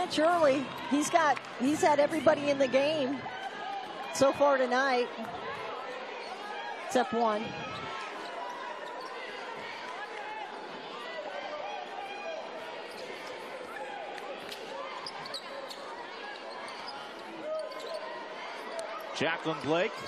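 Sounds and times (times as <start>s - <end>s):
voices in arena: 0.0s - 20.0s.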